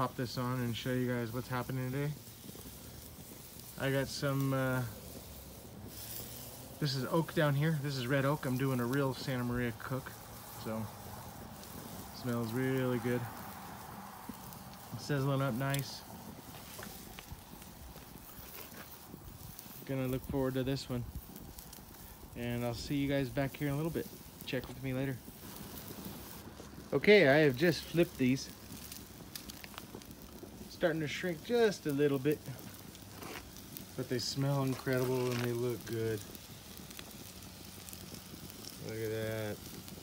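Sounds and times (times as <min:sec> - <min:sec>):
steaks sizzling on a grill: 0:00.0 - 0:40.0
wood fire crackling and popping: 0:00.0 - 0:40.0.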